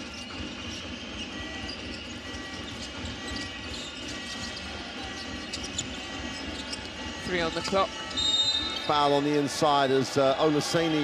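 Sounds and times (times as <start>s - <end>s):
murmur of arena crowd: 0.0s - 11.0s.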